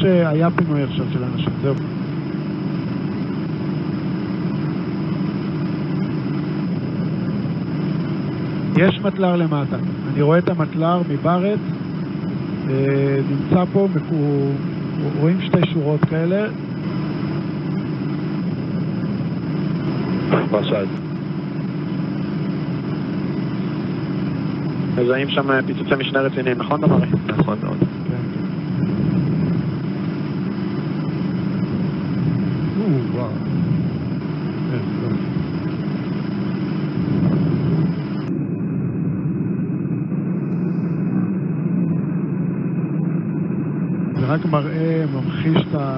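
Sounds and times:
low engine drone: 0.0 - 45.9.

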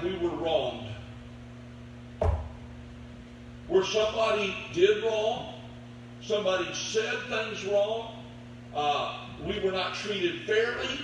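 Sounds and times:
steady low hum: 0.0 - 11.0
dull thump: 2.2 - 2.7.

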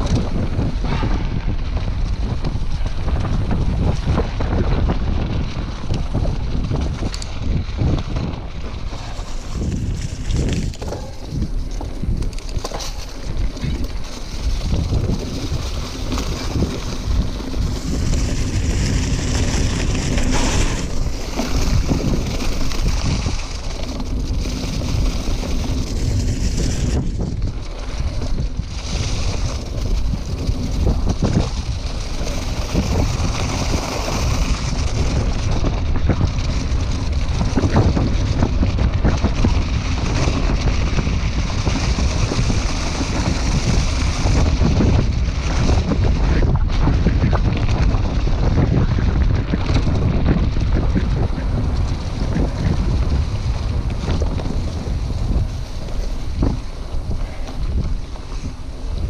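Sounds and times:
bike knocks and rattles: 0.0 - 59.0
bike tyres rumbling on dirt: 0.0 - 59.0
wind buffeting microphone: 0.0 - 59.0.

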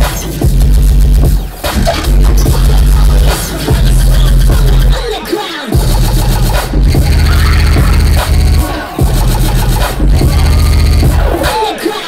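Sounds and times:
heavy pounding bass: 0.0 - 5.0, 5.8 - 11.5
loud dubstep music: 0.0 - 12.0.

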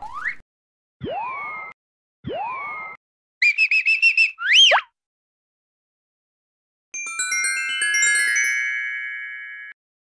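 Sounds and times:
sliding whistle: 2.4 - 4.8.

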